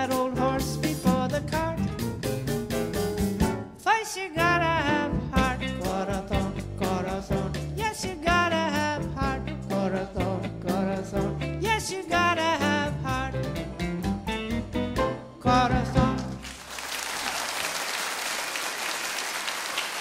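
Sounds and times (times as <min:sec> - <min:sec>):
jazz band playing swing: 0:00.0 - 0:16.5.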